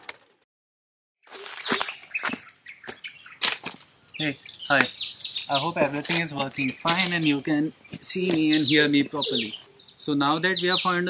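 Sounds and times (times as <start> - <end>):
dry leaves rustling and crackling: 1.3 - 4.1.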